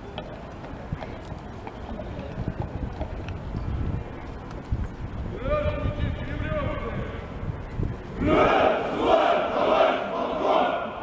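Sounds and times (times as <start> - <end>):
horse hooves clopping on stone: 0.2 - 3.4.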